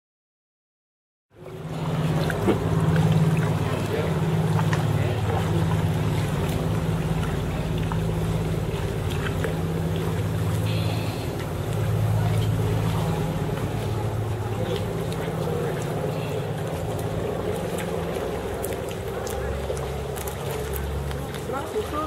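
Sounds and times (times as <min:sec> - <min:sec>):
boat engine humming: 0:01.3 - 0:22.0
voices: 0:01.4 - 0:22.0.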